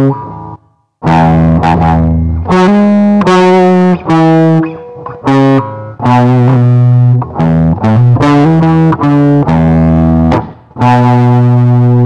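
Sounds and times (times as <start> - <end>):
electric guitar through amplifier: 0.0 - 12.0.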